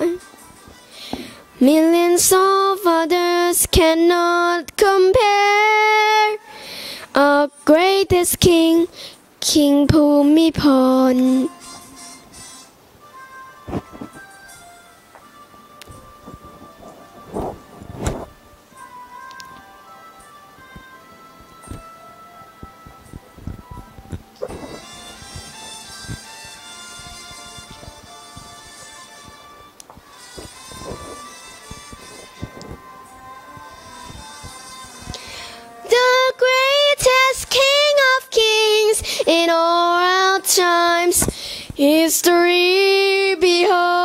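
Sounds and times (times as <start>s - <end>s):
girl singing into a microphone: 0.0s - 11.9s, 30.4s - 44.0s
faint backing track: 0.0s - 44.0s.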